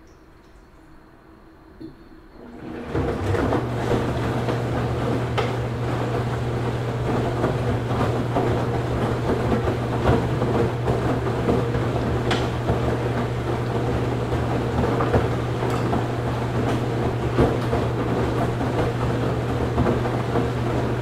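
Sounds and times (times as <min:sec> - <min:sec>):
washing machine motor hum: 0:00.0 - 0:21.0
drum churning noise: 0:02.5 - 0:21.0.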